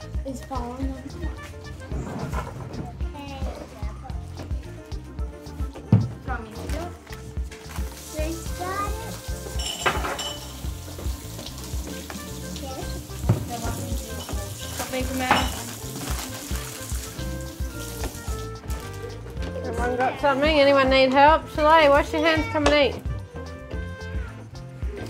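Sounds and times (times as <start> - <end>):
background music with low beat: 0.0 - 25.0
knives and plates knocking: 9.6 - 10.6, 14.2 - 15.8
plastic bags rustling: 14.6 - 17.2.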